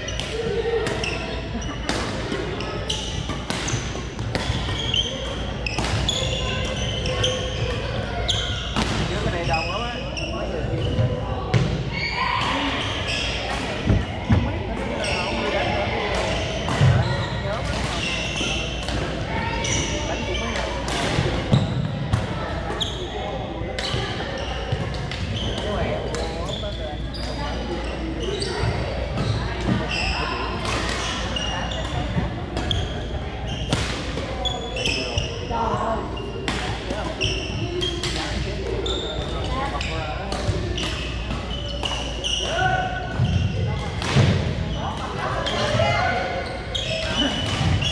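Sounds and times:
murmur of voices: 0.0s - 47.9s
rackets hitting shuttlecock: 1.8s - 9.3s, 17.6s - 19.2s, 40.3s - 44.6s
sneakers squeaking on wooden floor: 2.6s - 15.4s, 23.8s - 33.7s, 34.4s - 35.6s, 37.2s - 38.2s, 38.8s - 43.7s, 44.3s - 47.9s.

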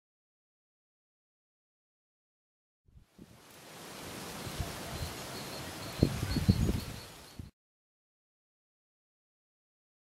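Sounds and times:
outdoor rustling: 3.0s - 7.5s
faint bird chirps: 4.4s - 7.5s.

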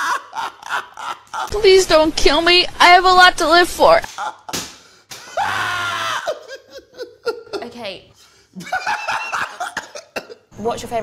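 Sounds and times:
person screaming: 5.3s - 6.5s.

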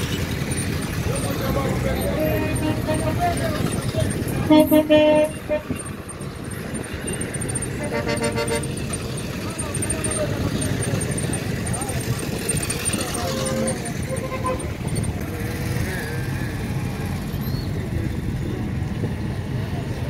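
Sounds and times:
indistinct voices: 0.0s - 17.2s
vehicle road and engine rumble: 0.0s - 20.0s.

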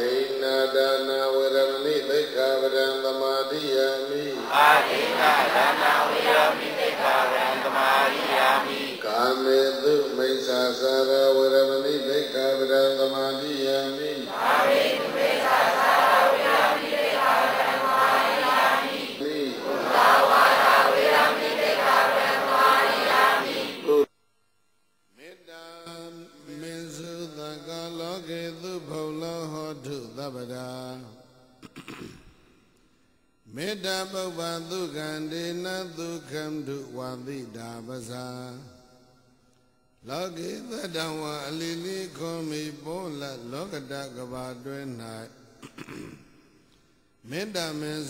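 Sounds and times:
man chanting: 0.0s - 7.8s, 8.6s - 17.0s, 19.1s - 19.9s, 25.2s - 31.2s, 33.5s - 38.8s, 40.0s - 45.6s, 47.3s - 48.0s
crowd reciting together: 0.0s - 24.1s
voices chanting long notes: 4.3s - 9.4s, 14.2s - 24.1s.

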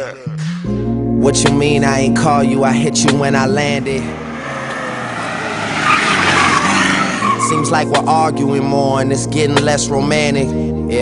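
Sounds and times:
car tyre and road noise: 3.6s - 8.2s.

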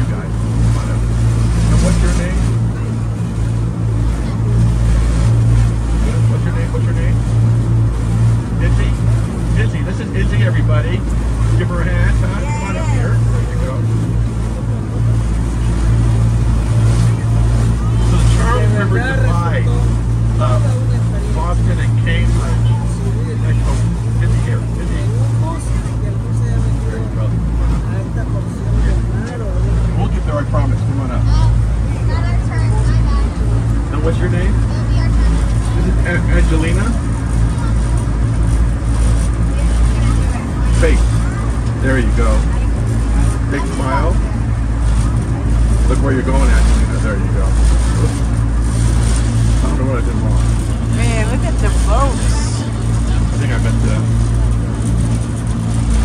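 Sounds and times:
boat engine droning: 0.0s - 56.0s
faint passengers' voices: 7.9s - 56.0s.

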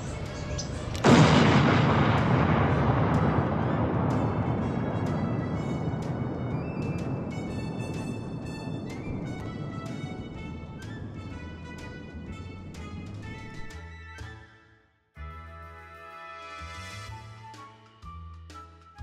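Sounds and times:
music: 0.0s - 19.0s
comic explosion: 0.2s - 11.4s.

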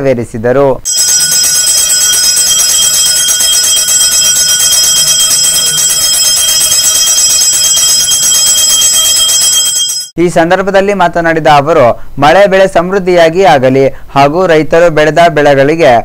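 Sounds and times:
temple bells ringing rapidly: 0.9s - 10.2s.

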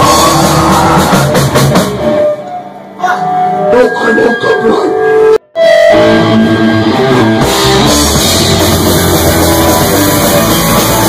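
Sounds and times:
punk rock band playing live: 0.0s - 2.5s, 5.9s - 11.0s.

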